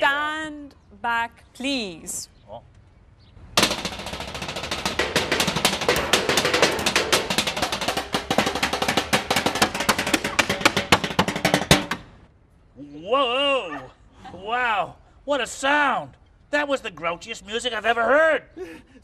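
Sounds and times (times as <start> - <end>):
drumsticks striking metal trash can: 3.6 - 12.2.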